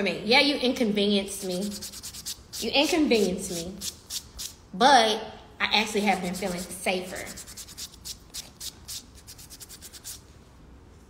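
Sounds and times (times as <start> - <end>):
scratchy rubbing on microphone: 1.4 - 4.5, 6.1 - 10.2.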